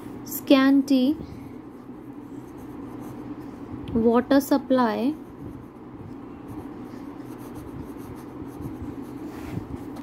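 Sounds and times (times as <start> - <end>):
steady low hum: 0.0 - 10.0
pen scratching on paper: 6.5 - 9.3.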